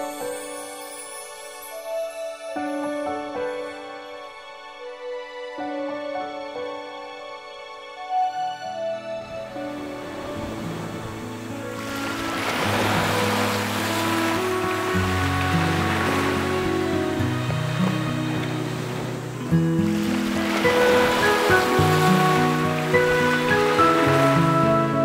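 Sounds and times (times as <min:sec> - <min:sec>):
slow background music: 0:00.0 - 0:25.0
small waves washing onto beach: 0:09.5 - 0:25.0.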